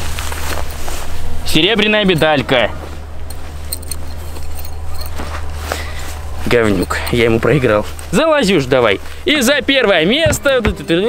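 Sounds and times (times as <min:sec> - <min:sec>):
rustling in tall grass: 0:00.0 - 0:09.5.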